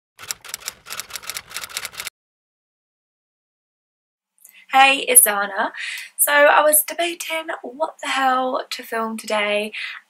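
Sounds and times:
typewriter typing: 0.2 - 2.1.

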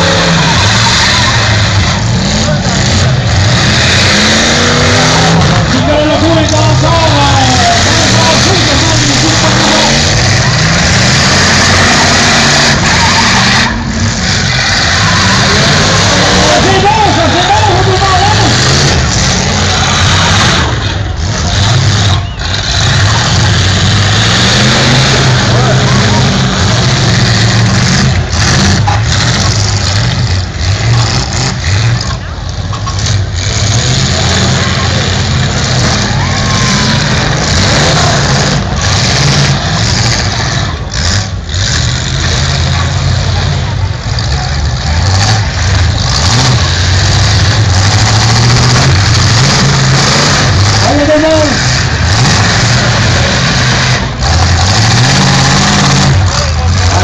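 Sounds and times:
car engines revving: 0.0 - 57.0
crowd voices: 0.0 - 57.0.

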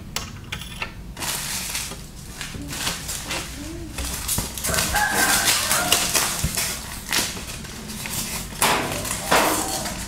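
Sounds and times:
plastic packaging crinkling: 1.2 - 10.0
wavering animal call: 4.7 - 6.4.

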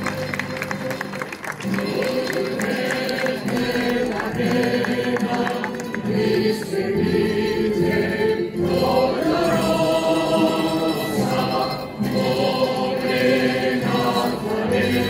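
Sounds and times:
choir singing a hymn: 1.6 - 15.0.

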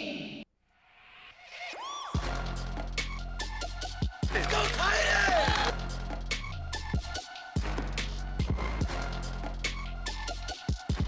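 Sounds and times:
music track: 2.2 - 6.3.

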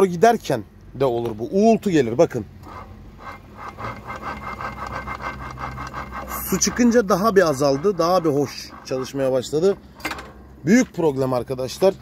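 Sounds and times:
gears grinding with rasping hum: 2.0 - 10.6.

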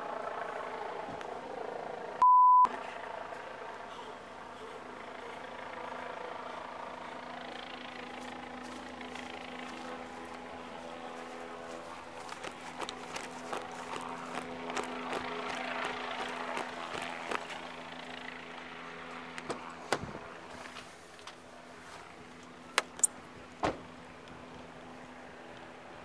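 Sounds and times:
vehicle engines humming: 0.0 - 26.0
censor bleep: 2.2 - 2.7.

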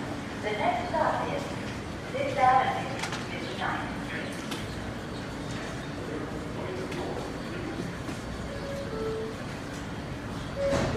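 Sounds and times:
subway platform background noise: 0.0 - 10.9
faint voices: 0.4 - 10.9.

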